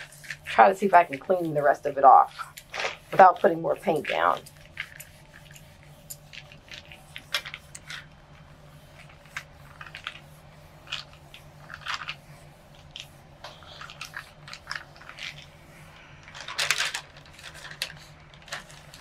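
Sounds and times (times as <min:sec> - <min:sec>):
paper rustling and crinkling: 0:00.0 - 0:19.0.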